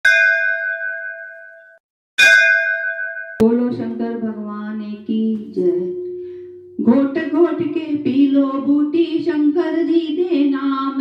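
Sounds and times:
bell-like ding: 0.0 - 4.4, 5.7 - 7.0.

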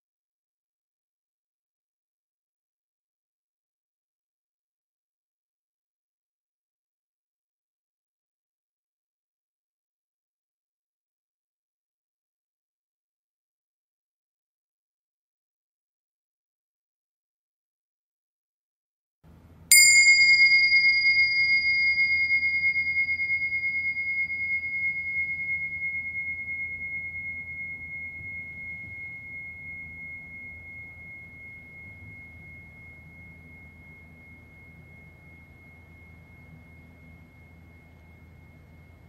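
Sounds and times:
meditation bell ringing: 19.7 - 39.0.

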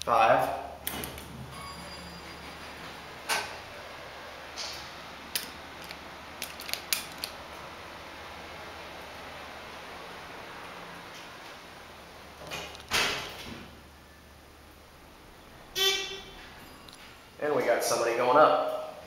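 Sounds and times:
elevator hum: 0.8 - 18.0.

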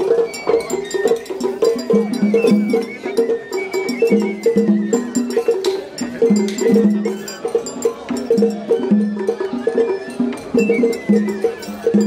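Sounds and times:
rhythmic drum strokes: 0.0 - 12.0.

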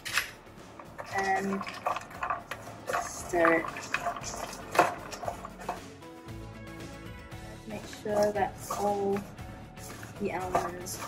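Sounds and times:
background music with held notes: 0.0 - 11.0
spatula scraping a wok: 0.8 - 6.0, 7.8 - 11.0.

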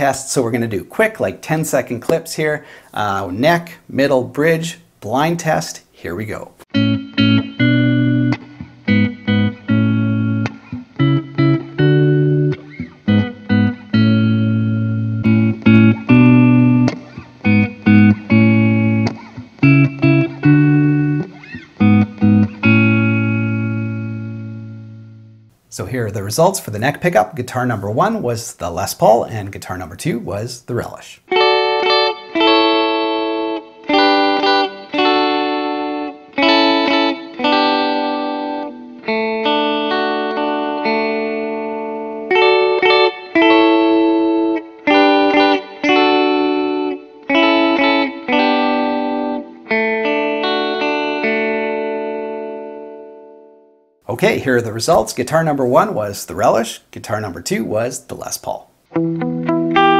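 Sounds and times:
electric guitar chord riff: 6.7 - 25.5, 31.3 - 54.4, 58.9 - 59.9.

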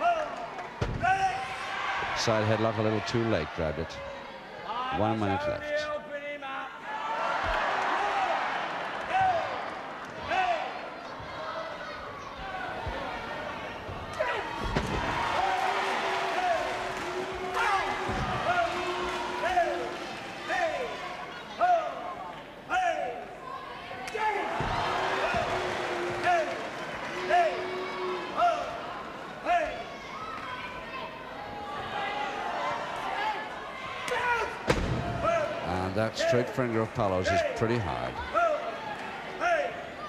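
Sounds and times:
crowd shouting: 6.8 - 36.6, 37.3 - 40.0.

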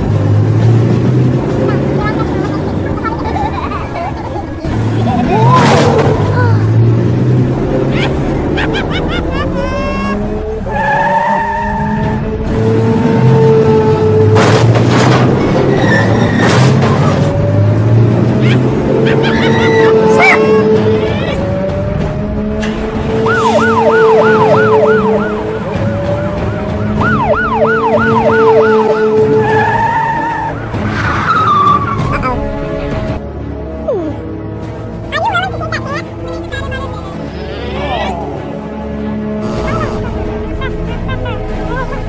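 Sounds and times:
engine hum: 0.0 - 42.0
cartoon tyres squealing: 9.6 - 12.2, 15.2 - 17.4, 18.4 - 21.4, 29.3 - 32.2
cartoon police siren yelp: 23.2 - 25.6, 27.0 - 30.5.

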